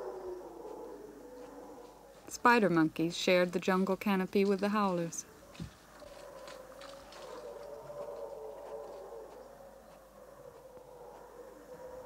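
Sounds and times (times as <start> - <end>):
distant howler monkeys calling: 0.0 - 2.3, 5.3 - 12.0.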